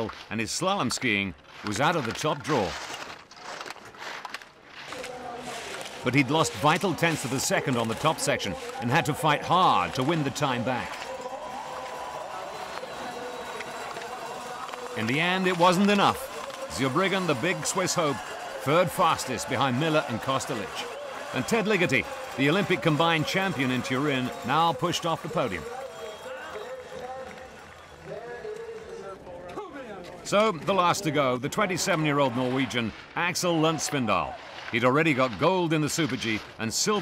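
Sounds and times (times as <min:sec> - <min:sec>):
people talking: 0:00.0 - 0:02.8, 0:04.9 - 0:11.4, 0:12.4 - 0:27.4, 0:28.4 - 0:37.0
distant crowd: 0:00.0 - 0:03.7, 0:04.6 - 0:37.0
ski edges scraping snow: 0:00.0 - 0:24.5, 0:31.8 - 0:37.0
outdoor murmur: 0:04.7 - 0:35.3.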